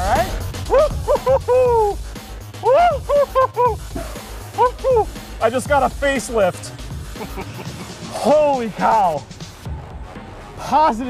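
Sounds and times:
steady low rumble: 0.0s - 8.1s
man laughing: 0.7s - 2.0s, 2.6s - 5.2s, 7.0s - 8.3s.

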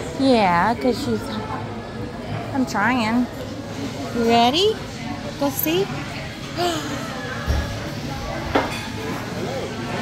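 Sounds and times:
faint voices: 0.6s - 10.0s
dishes clinking: 8.5s - 9.2s.

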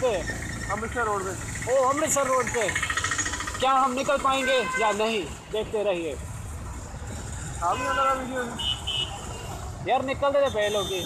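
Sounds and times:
motorcycle engine rumble: 0.0s - 4.5s.

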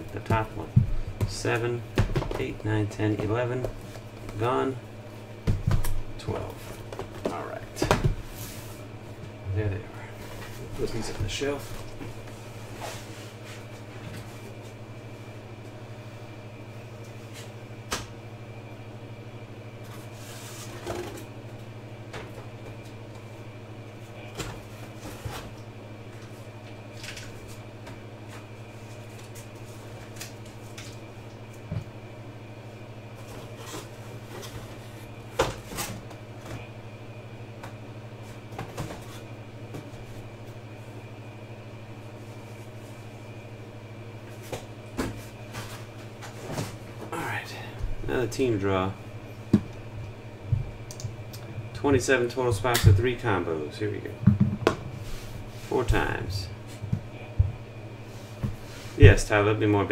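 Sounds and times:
low electrical hum: 0.0s - 59.9s
knocks and clunks of handling: 54.2s - 54.9s.

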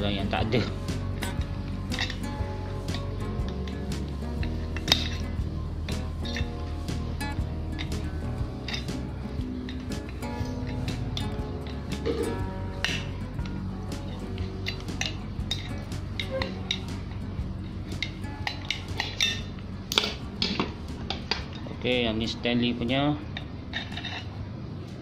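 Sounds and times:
background music: 0.0s - 25.0s.

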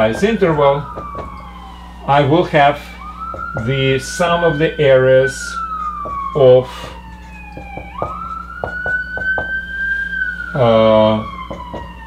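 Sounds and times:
siren wailing: 0.0s - 12.0s.

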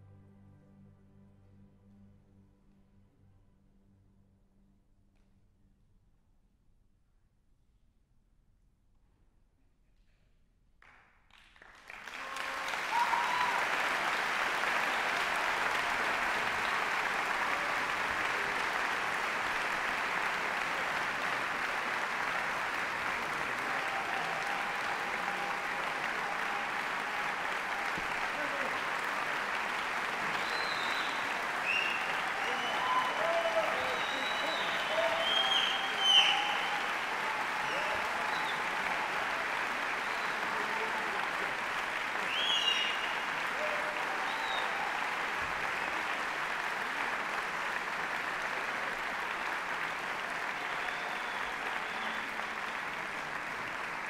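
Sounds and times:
audience applauding: 11.3s - 54.0s
cheering shouts: 12.0s - 54.0s.

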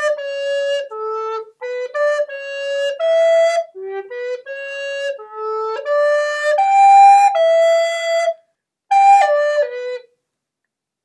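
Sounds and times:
solo flute melody: 0.0s - 10.2s.

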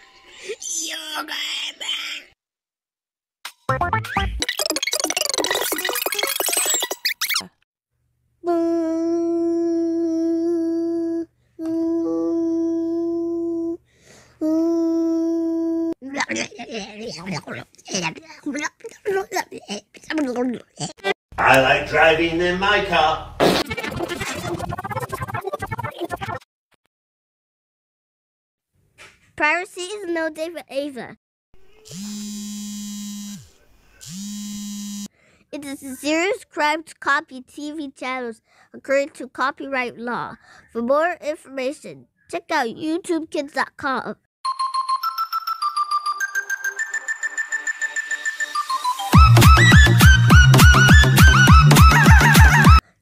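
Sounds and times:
electronic buzzing tones: 31.9s - 35.1s.

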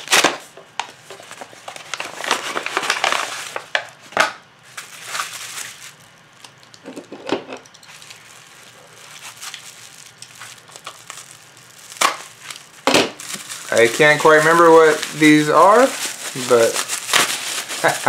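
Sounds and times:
bubble wrap crackling: 0.0s - 6.7s, 7.9s - 18.0s
padded mailer rustling: 8.1s - 18.0s.

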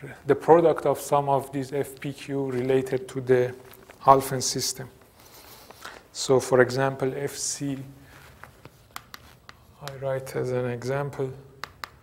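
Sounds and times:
chalk tapping on blackboard: 8.6s - 10.0s, 11.6s - 12.0s.

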